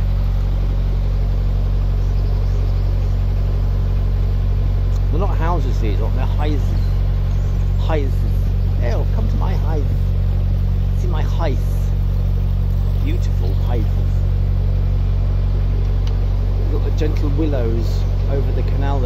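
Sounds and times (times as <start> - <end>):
boat engine droning: 0.0 - 19.0
voices: 1.8 - 19.0.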